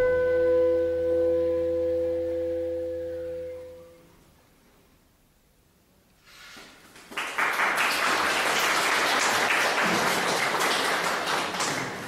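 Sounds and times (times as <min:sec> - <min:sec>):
clarinet quartet sustained chord: 0:00.0 - 0:04.0.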